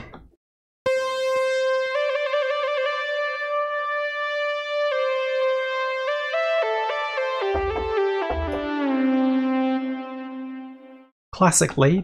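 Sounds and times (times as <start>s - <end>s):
synthesizer lead note: 0.9s - 11.1s.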